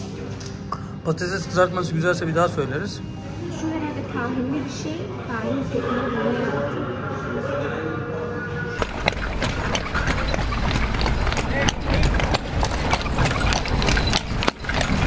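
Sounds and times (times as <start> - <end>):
music: 0.0 - 15.0
cart rattling: 8.8 - 15.0
horse hooves clopping: 8.8 - 15.0.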